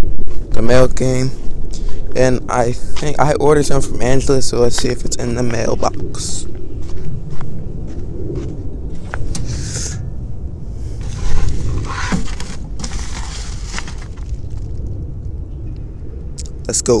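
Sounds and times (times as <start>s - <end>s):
wind rumble on microphone: 0.0s - 17.0s
footsteps: 4.7s - 10.0s, 11.0s - 14.8s
plastic mailer rustling: 11.0s - 14.8s.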